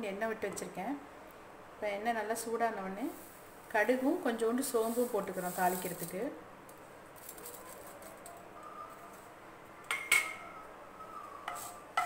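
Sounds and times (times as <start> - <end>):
spices crackling in hot oil: 2.4 - 8.5.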